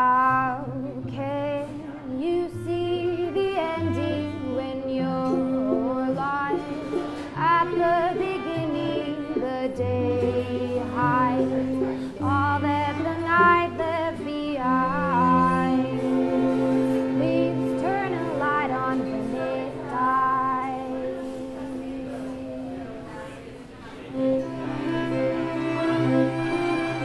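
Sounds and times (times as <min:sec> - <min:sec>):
woman singing: 0:00.0 - 0:23.0
string quartet: 0:00.6 - 0:23.4, 0:24.0 - 0:27.0.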